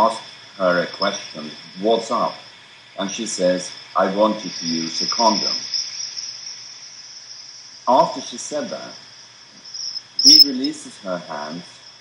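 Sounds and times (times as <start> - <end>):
man speaking: 0.0 - 2.4, 3.0 - 5.6, 7.9 - 9.0, 10.2 - 11.7
high-pitched whine: 0.0 - 12.0.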